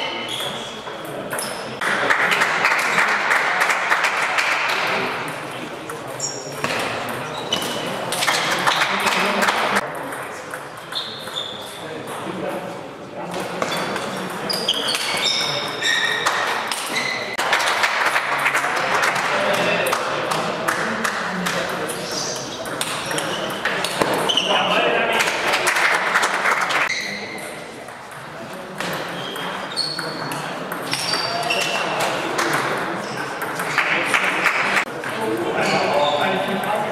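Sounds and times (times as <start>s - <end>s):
shoes squeaking on floor: 0.0s - 1.7s, 6.2s - 7.9s, 10.9s - 11.8s, 13.6s - 17.4s, 22.0s - 24.8s, 26.9s - 27.5s, 29.0s - 32.1s
voices in a sports hall: 0.0s - 36.9s
people clapping: 1.8s - 5.1s, 8.1s - 9.8s, 17.3s - 21.6s, 25.1s - 26.9s, 33.7s - 34.9s.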